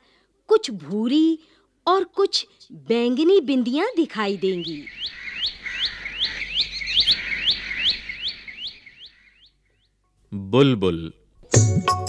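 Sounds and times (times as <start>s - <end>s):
bird calling rising notes: 4.1s - 10.0s.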